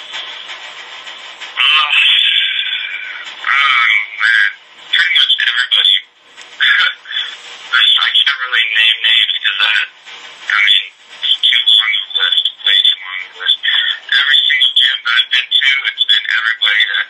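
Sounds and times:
man speaking garbled: 1.6 - 6.0, 6.6 - 9.9, 10.5 - 17.0.

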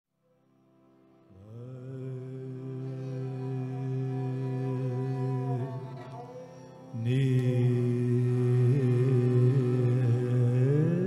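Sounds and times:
harmonium drone: 0.4 - 10.7
person singing: 1.4 - 11.0.

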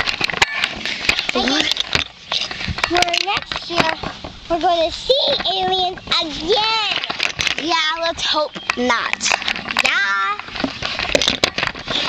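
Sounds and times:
camera handling rustling and knocks: 0.0 - 4.4, 6.9 - 7.7, 8.5 - 12.0.

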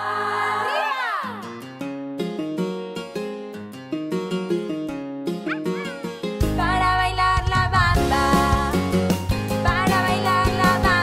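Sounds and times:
cheerful plucked children's music: 4.4 - 11.0.

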